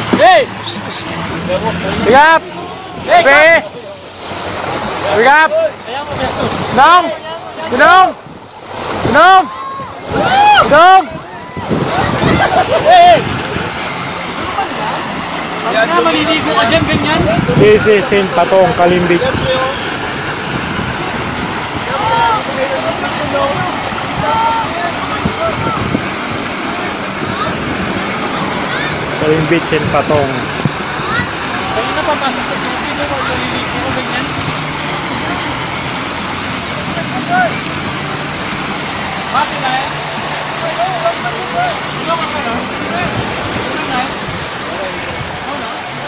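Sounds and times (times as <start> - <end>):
people talking: 0.0 - 8.2, 8.9 - 20.1, 20.8 - 46.0
surf rushing: 0.0 - 46.0
wind on a beach: 7.7 - 14.6, 16.1 - 32.1, 42.8 - 46.0.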